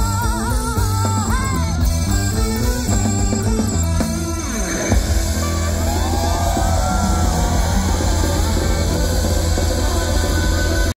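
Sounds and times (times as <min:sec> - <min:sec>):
live pop band over pa: 0:00.0 - 0:11.0.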